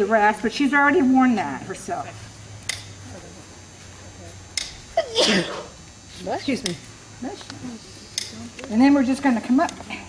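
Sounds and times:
person sneezing: 5.0 - 5.7.

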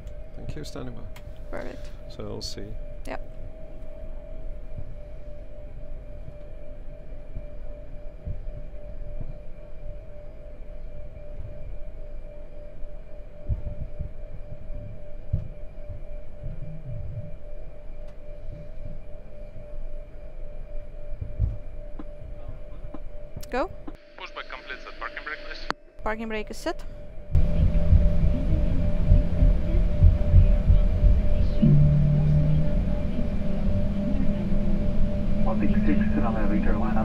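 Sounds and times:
machine hum: 0.0 - 37.0
dull low thumps: 13.4 - 17.4, 21.2 - 22.2, 27.3 - 37.0.

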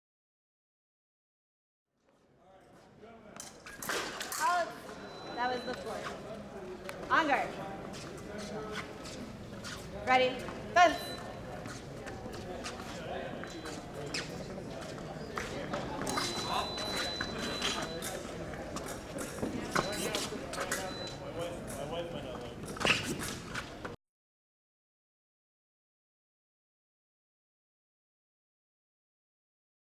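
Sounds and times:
voices in a large hall: 2.0 - 24.0.

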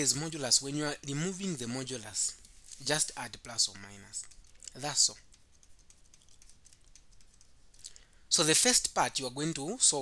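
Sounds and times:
stylus tapping on tablet: 5.2 - 7.8.

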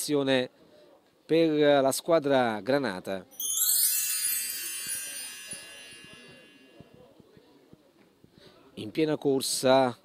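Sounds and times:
shimmering chime sting: 3.4 - 6.8.

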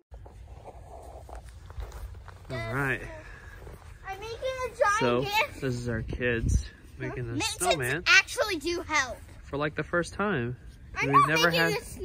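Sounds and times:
footsteps crunching through snow: 0.1 - 5.5.

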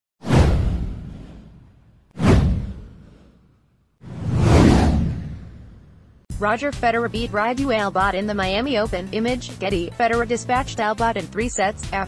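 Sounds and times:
whoosh sound effect: 0.2 - 6.2
deep low boom: 0.3 - 3.2, 4.1 - 6.2.

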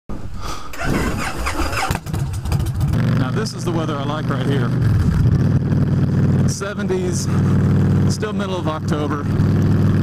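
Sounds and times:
motorcycle engine idling: 1.2 - 10.0.

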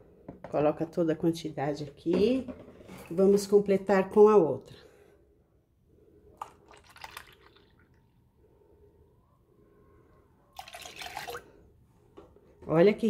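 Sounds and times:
milk dripping and splashing: 6.3 - 8.0, 10.6 - 11.6
milk pouring into a saucepan: 6.3 - 8.0, 10.5 - 11.6.

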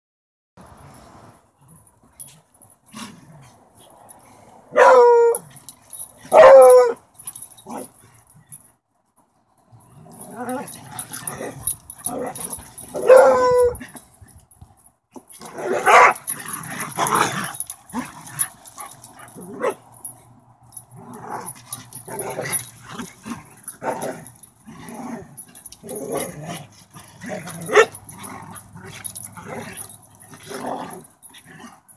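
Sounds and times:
dogs barking: 4.7 - 5.4, 6.3 - 7.0, 12.1 - 13.8, 15.6 - 16.3, 27.4 - 28.0
dogs growling: 10.0 - 14.0, 15.4 - 19.8, 20.8 - 31.9.

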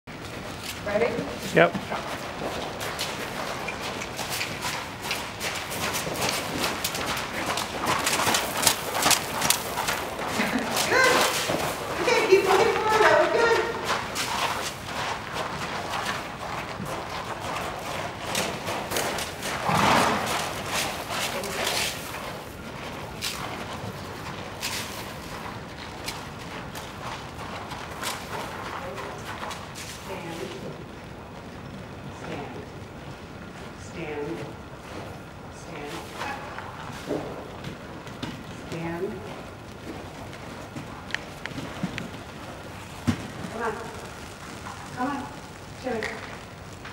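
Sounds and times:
horse hooves thudding on sand: 0.1 - 46.9.

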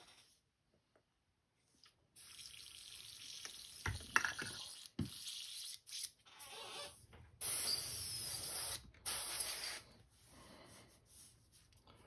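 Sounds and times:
airbrush hissing: 7.4 - 11.3.

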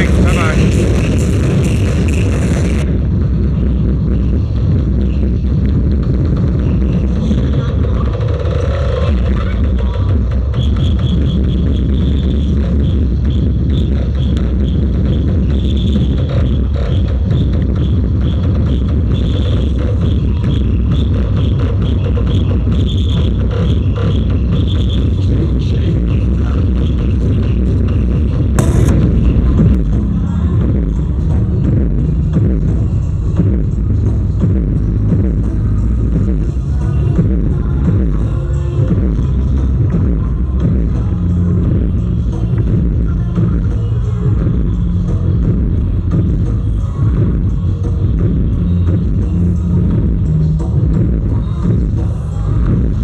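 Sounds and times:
electronic dance music: 0.0 - 53.0.

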